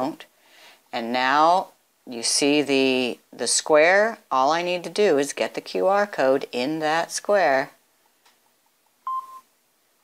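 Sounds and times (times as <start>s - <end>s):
short scanner beep: 9.0s - 9.5s.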